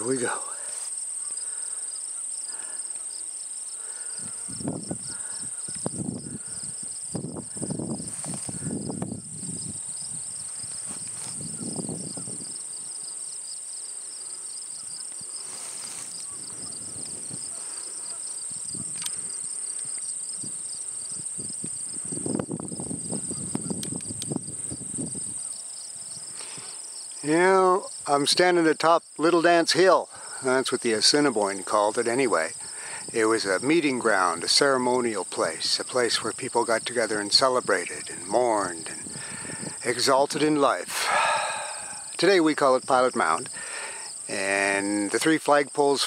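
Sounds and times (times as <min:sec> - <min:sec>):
crickets and insects chorus: 0:00.0 - 0:46.0
wind buffeting microphone: 0:04.2 - 0:13.0, 0:16.1 - 0:26.4, 0:37.4 - 0:40.0.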